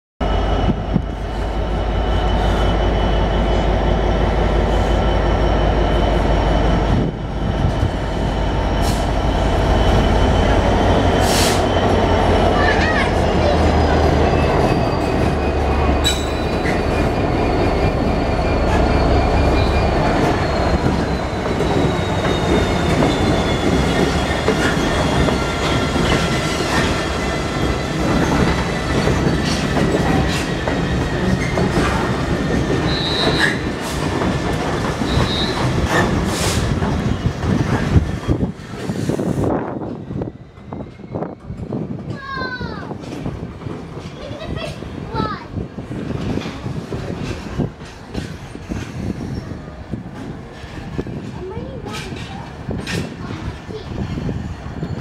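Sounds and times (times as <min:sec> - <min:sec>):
wheel-flange squeals: 0:08.4 - 0:34.0, 0:34.9 - 0:38.5, 0:39.9 - 0:41.8.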